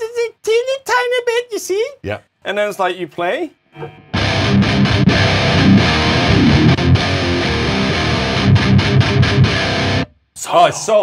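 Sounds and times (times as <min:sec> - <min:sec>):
distorted electric guitar riffing: 0:03.8 - 0:10.1.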